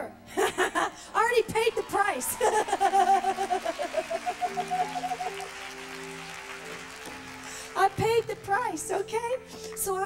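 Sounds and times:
woman laughing into microphone: 0.3 - 1.0, 2.3 - 5.4.

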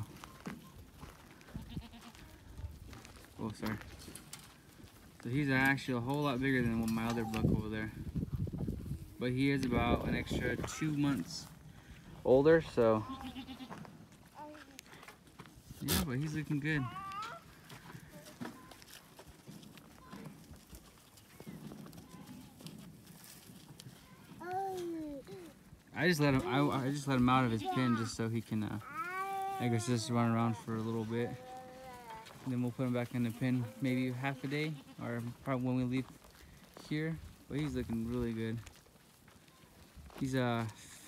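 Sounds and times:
goat hooves on dry dirt: 0.0 - 41.0
goat bleating: 1.4 - 2.4, 13.0 - 13.9, 34.4 - 35.1.

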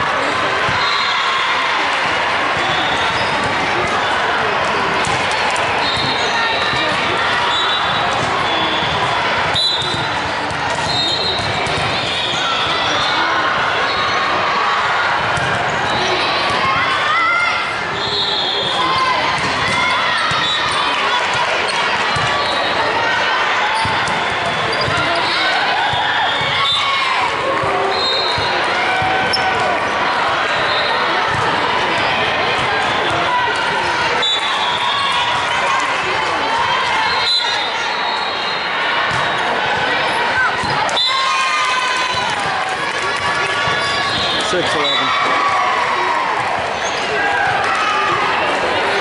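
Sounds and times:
people calling and chattering: 0.0 - 49.0.

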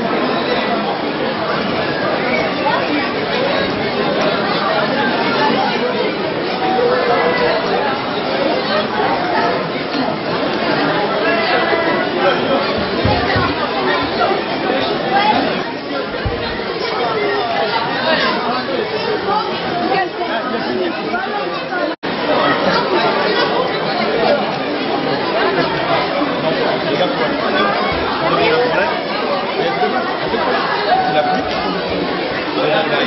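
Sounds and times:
many voices chattering: 0.0 - 33.0.

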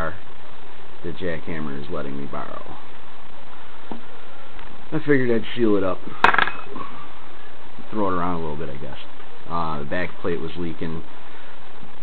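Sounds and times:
steady hiss: 0.0 - 12.0
metallic rattle and ring: 6.2 - 6.7.

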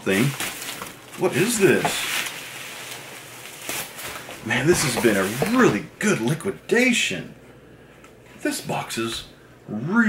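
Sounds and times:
bubble wrap crinkling: 0.0 - 5.9.

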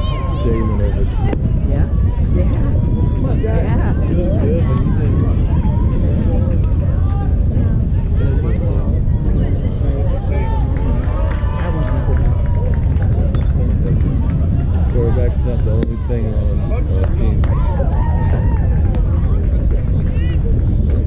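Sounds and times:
low rumble: 0.0 - 21.0
overlapping voices calling out: 0.0 - 21.0.

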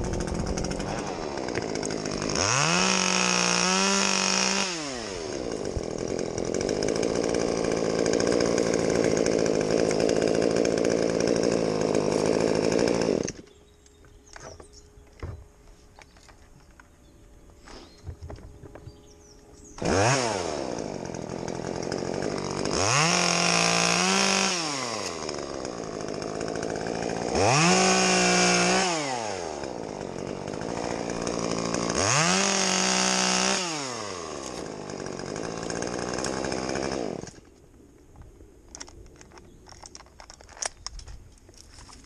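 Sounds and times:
chainsaw revving and idling: 0.0 - 13.6, 19.2 - 37.5.

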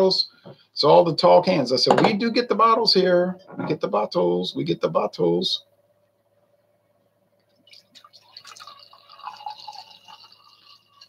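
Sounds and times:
drink pouring into a glass: 7.6 - 11.0.

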